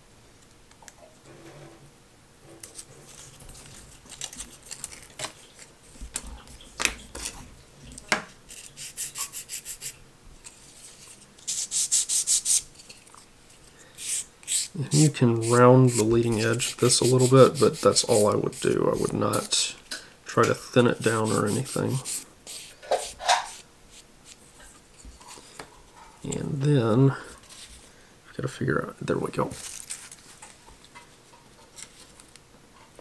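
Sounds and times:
hand sanding wooden strip: 8.5 - 10.0, 11.5 - 12.6, 14.0 - 19.7, 20.9 - 24.4.

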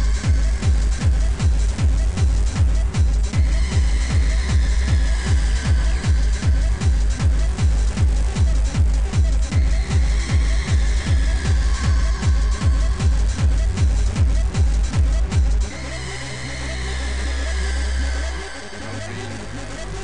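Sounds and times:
heavy kick drum: 0.0 - 15.8
dense percussion: 0.0 - 20.0
high synth line: 9.5 - 14.3.

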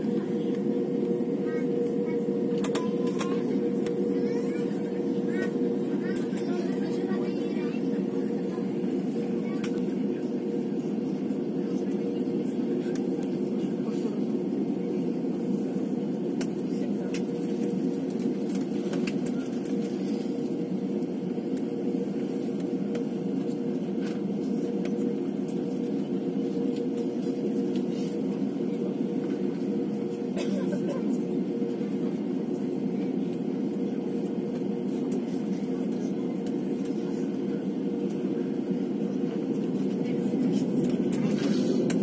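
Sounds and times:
jet engine hum in cabin: 0.0 - 42.0.

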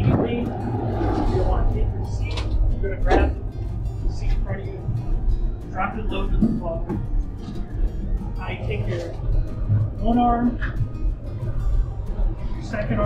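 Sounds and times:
man giving instructions: 0.0 - 0.5, 1.3 - 3.4, 4.1 - 4.9, 5.7 - 6.9, 8.4 - 9.2, 10.0 - 10.6, 12.6 - 13.0
background music: 0.0 - 13.0.

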